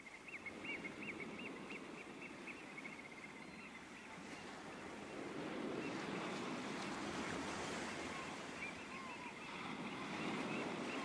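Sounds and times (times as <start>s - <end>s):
small bird calling: 8.0s - 11.0s.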